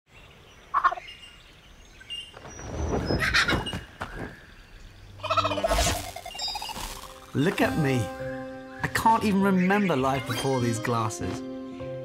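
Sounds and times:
kookaburra calls: 5.2s - 7.3s.

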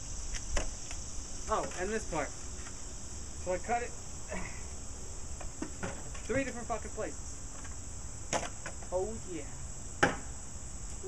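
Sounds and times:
insect chorus drone: 0.0s - 11.0s.

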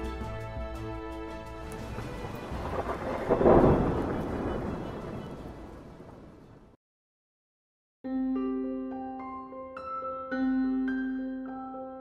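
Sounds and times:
rain hissing: 1.4s - 6.4s
thunder crack and rumble: 1.7s - 6.8s.

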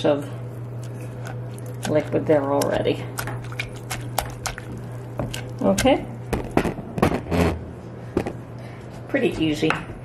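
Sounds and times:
cabbage squishing crunches: 0.6s - 6.3s.

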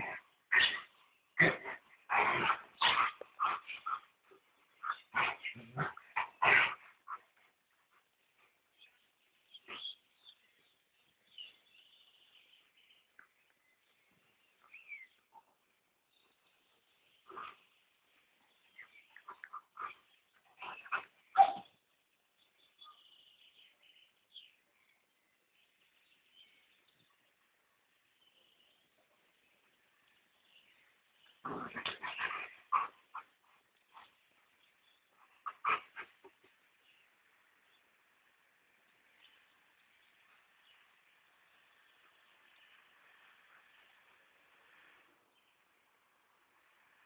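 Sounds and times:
dogs play-fighting and vocalising: 0.0s - 10.0s, 17.2s - 17.8s, 18.7s - 21.9s, 31.2s - 36.7s.

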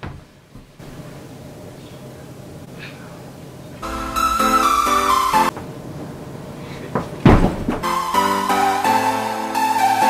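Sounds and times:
body thumping on wooden floor: 7.0s - 7.9s.

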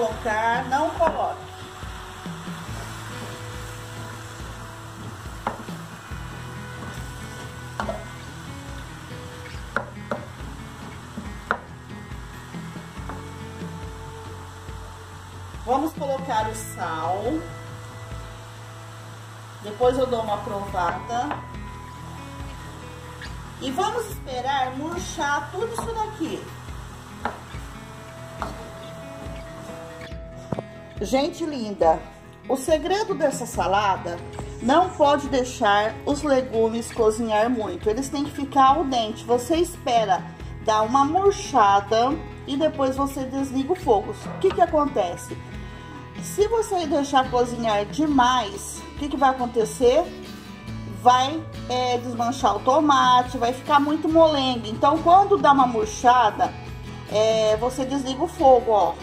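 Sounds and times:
vegetables sizzling in a wok: 0.0s - 30.8s
soft background music: 0.0s - 59.0s
wooden spoon knocking on pan: 5.4s - 5.7s, 9.7s - 10.6s, 13.0s - 13.3s, 25.6s - 26.2s, 28.4s - 28.7s.

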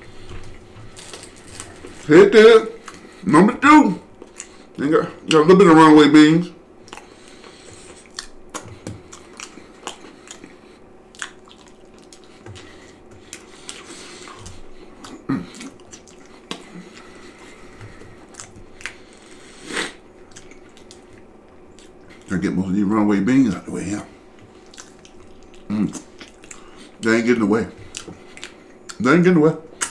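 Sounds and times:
person chewing food: 0.0s - 2.1s, 2.7s - 3.2s, 4.0s - 4.8s, 6.8s - 22.3s, 24.2s - 27.1s, 27.8s - 29.0s
wet lip and tongue clicks: 6.8s - 17.1s, 20.2s - 22.3s, 24.4s - 26.7s, 27.9s - 29.0s.

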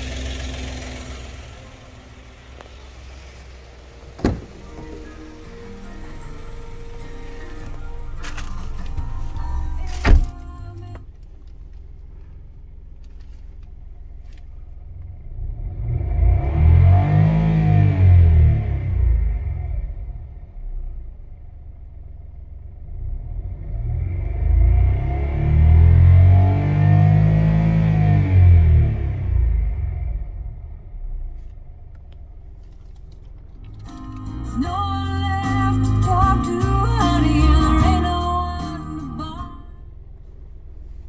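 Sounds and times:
car engine idling and revving: 0.0s - 41.0s.

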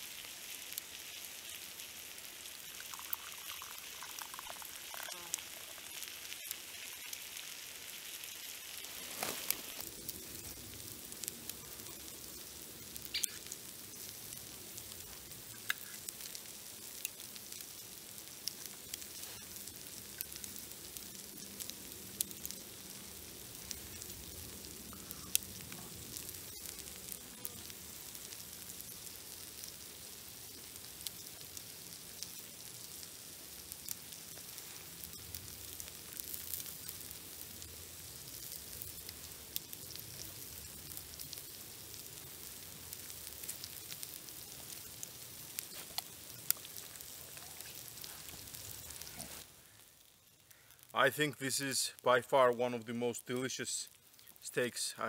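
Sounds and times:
faint crackling hiss: 0.0s - 55.0s.

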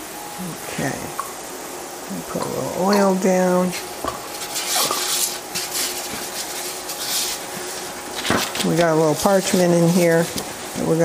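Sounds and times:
faint steady hum: 0.0s - 11.0s
parchment paper rustling: 3.7s - 11.0s.

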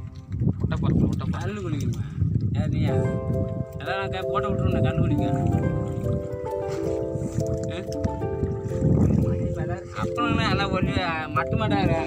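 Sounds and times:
background music with held notes: 2.6s - 12.0s.

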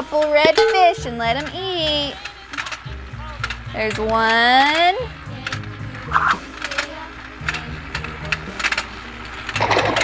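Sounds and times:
background music: 0.0s - 10.0s
toy motor and gears clicking: 1.4s - 10.0s.

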